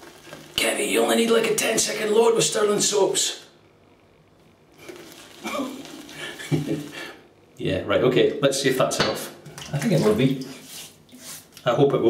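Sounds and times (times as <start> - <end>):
wet brush scrubbing soap: 4.8 - 7.0, 9.7 - 11.6.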